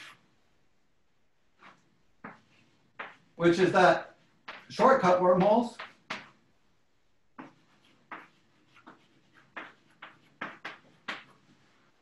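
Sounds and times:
chalk scratching on blackboard: 7.4s - 10.9s.

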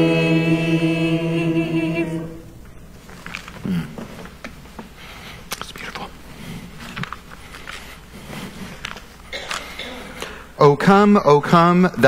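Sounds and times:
paper rustling: 3.0s - 4.9s, 5.5s - 9.8s
hushed whispering: 5.4s - 6.3s.

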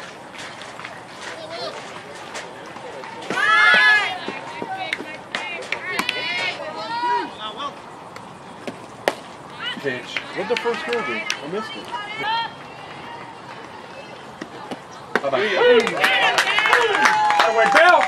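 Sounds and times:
young voices shouting and cheering: 3.0s - 7.8s, 9.5s - 18.0s.

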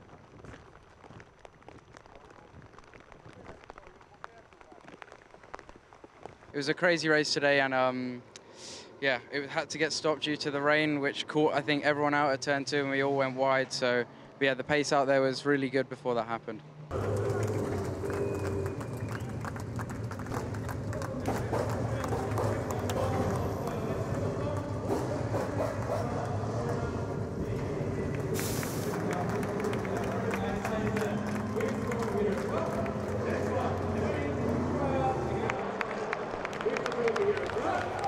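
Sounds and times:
crowd noise: 16.9s - 38.0s
indistinct voices: 16.9s - 38.0s
short burst of hiss: 28.4s - 29.0s.

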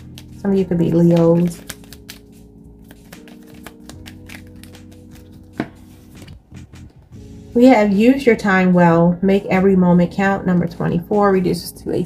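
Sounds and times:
cards being shuffled: 0.0s - 6.4s
soft background music: 0.0s - 12.0s.

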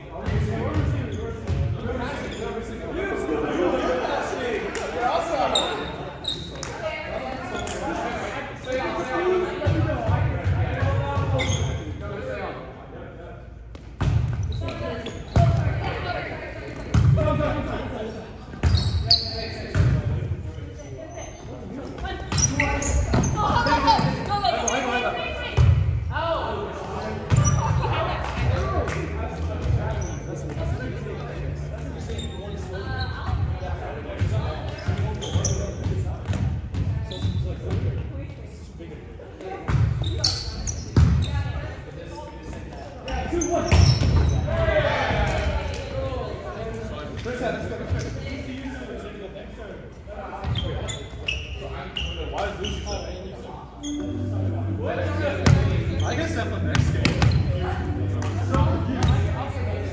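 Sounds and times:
volleyball thuds echoing in hall: 0.1s - 2.3s, 4.6s - 12.7s, 13.5s - 20.7s, 21.4s - 38.5s, 39.3s - 41.8s, 42.4s - 48.4s, 55.1s - 59.9s.

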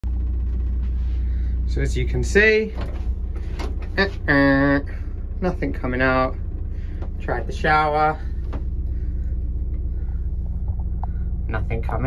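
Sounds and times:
machinery rumble: 0.0s - 12.0s.

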